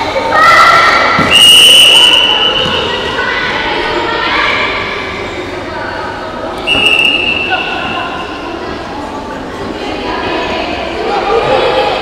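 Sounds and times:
children shouting in a hall: 0.0s - 5.5s
shrill whistle note: 1.3s - 2.8s, 6.6s - 8.4s.

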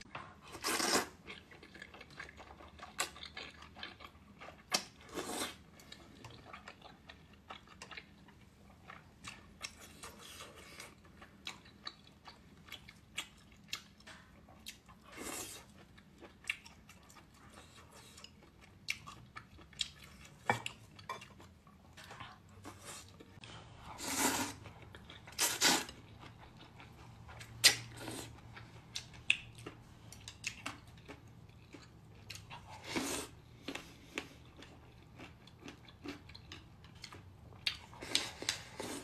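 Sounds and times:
chewing: 0.1s - 39.0s.

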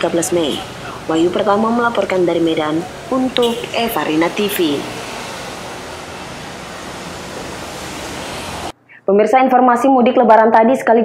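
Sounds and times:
outdoor background hiss: 0.0s - 10.2s.

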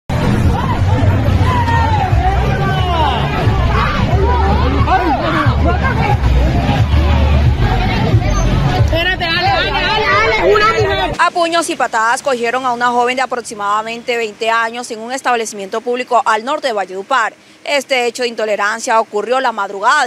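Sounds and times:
heavy low rumble: 0.1s - 11.2s
crowd talking and calling out: 0.1s - 17.4s.

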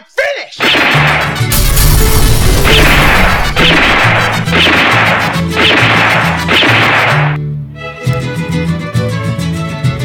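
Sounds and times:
loud crashing hits: 1.1s - 7.2s.

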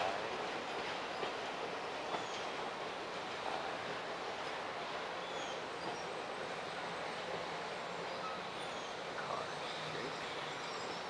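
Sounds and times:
train wheels rolling on track: 0.0s - 11.0s.

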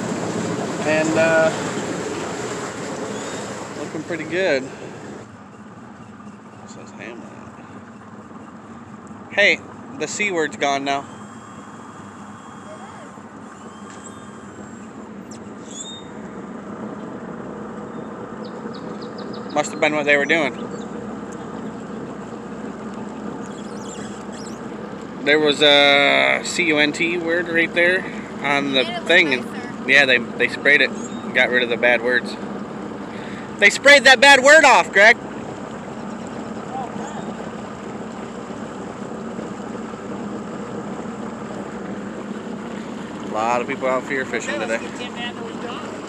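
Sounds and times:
motorboat engine running: 0.0s - 46.0s
water noise: 0.0s - 46.0s.

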